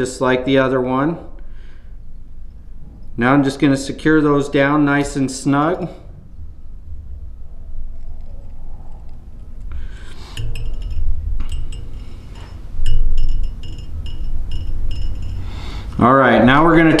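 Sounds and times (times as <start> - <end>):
low handling bumps: 9.3 - 17.0
light metallic clinks: 9.7 - 15.9.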